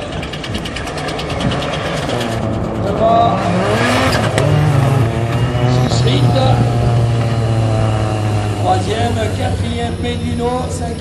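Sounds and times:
race car engines passing: 0.0s - 11.0s
rapid engine crackling: 0.0s - 11.0s.

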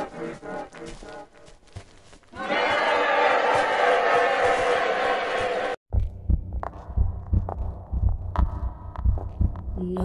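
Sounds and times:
dense crowd-like shouting noise: 2.4s - 5.8s
low bass-heavy thumping: 5.9s - 10.0s.

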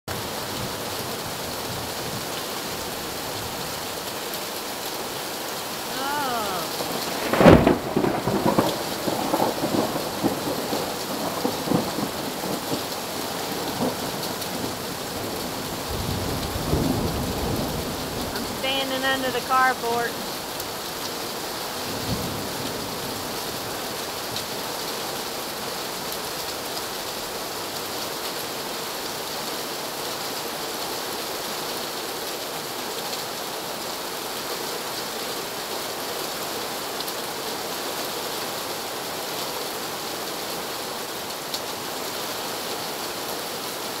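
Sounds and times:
steady rain hiss: 0.1s - 44.0s.

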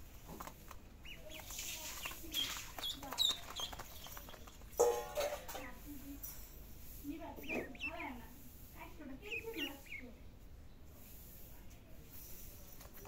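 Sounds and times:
ducklings peeping: 0.4s - 5.9s, 7.2s - 8.4s, 9.2s - 10.2s.

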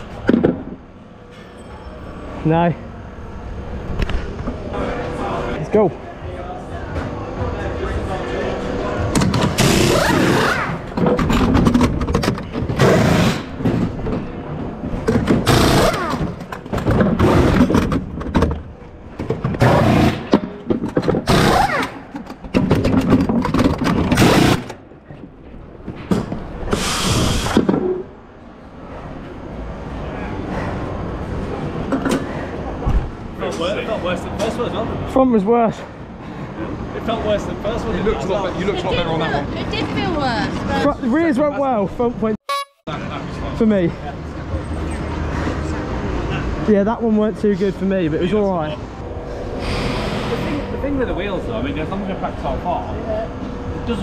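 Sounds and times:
pneumatic wheel gun bursts: 15.4s - 16.4s, 21.2s - 22.0s, 26.7s - 27.7s, 49.6s - 50.5s.

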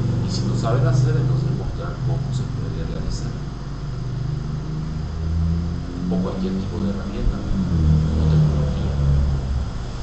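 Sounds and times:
low engine-like hum: 0.0s - 10.0s.

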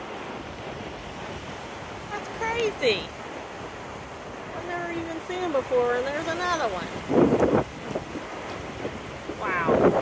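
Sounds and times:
surf: 0.0s - 10.0s
wind buffeting microphone: 0.0s - 10.0s.

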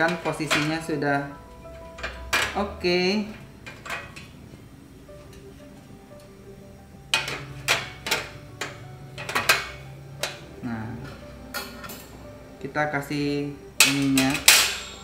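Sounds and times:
quiet background music: 0.0s - 15.0s.

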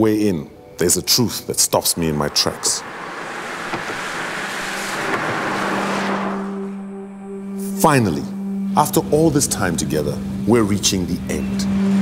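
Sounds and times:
car tyres hissing on wet road: 1.8s - 6.8s.

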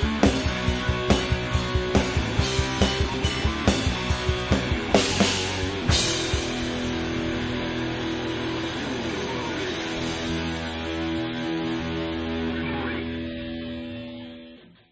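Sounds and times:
distorted electric guitars and bass: 0.0s - 14.9s.

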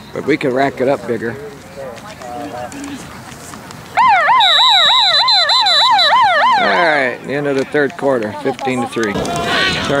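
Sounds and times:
electronic warbling siren: 4.0s - 7.2s
steady high tone: 4.0s - 7.2s.

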